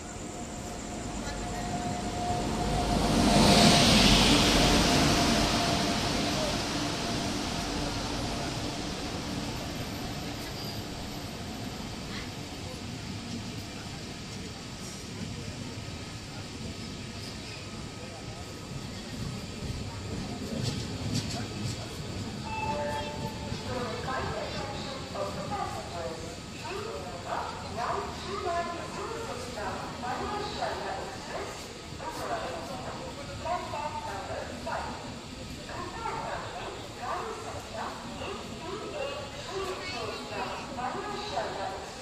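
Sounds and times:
train passing: 0.0 - 42.0.

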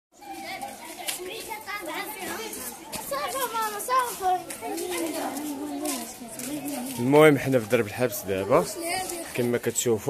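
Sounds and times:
children talking and calling out: 0.1 - 10.0.

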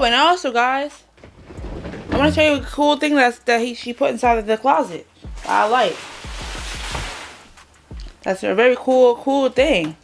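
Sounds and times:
soft low thumps: 1.5 - 3.0, 4.2 - 4.6, 5.2 - 5.5.

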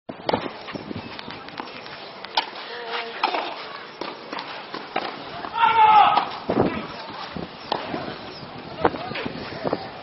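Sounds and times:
person shouting: 5.5 - 6.3.

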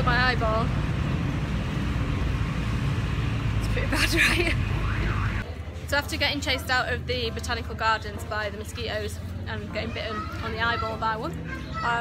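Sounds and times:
bus engine rumble: 0.0 - 5.9
road noise: 0.0 - 12.0.

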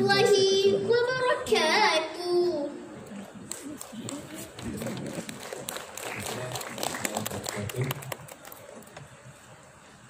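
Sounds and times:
murmured voices: 2.8 - 9.3
audience clapping: 3.4 - 9.0.

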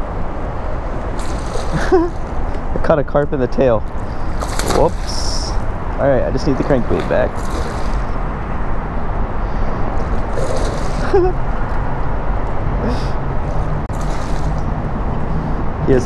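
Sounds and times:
steady rushing noise: 0.0 - 16.0
fish splashing at surface: 1.2 - 2.4, 4.1 - 5.8, 6.4 - 8.2, 10.0 - 11.4, 13.9 - 14.8.

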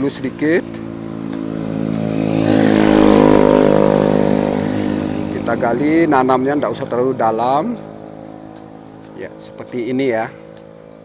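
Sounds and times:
vehicle engine passing: 0.0 - 11.0.

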